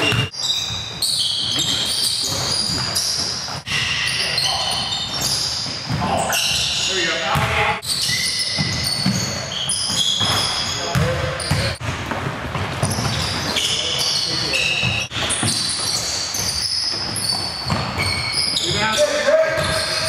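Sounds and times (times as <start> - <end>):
sneakers squeaking: 0.0 - 20.0
players' voices: 1.6 - 11.8, 12.8 - 15.1, 18.5 - 20.0
basketball bouncing on hardwood: 9.9 - 13.4, 17.0 - 18.2.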